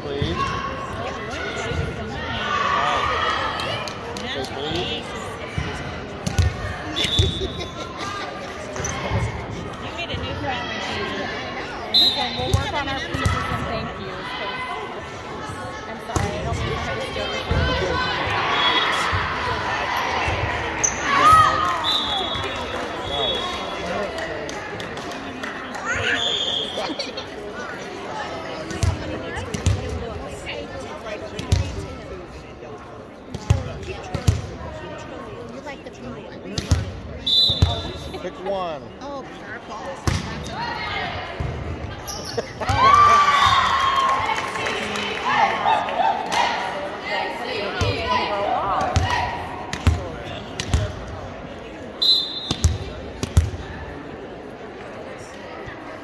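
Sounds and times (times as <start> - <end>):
voices chattering in a hall: 0.0 - 56.0
referee's whistle: 6.9 - 7.8, 11.9 - 12.5, 21.7 - 23.8, 26.0 - 26.9, 37.2 - 38.1, 52.0 - 52.8.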